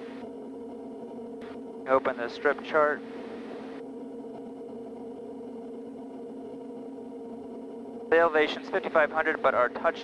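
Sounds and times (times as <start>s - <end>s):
turboprop engine and propeller droning: 0.0s - 10.0s.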